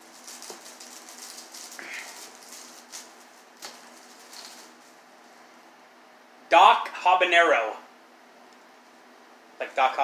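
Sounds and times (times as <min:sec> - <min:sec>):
packing paper crinkling: 0:00.0 - 0:05.0.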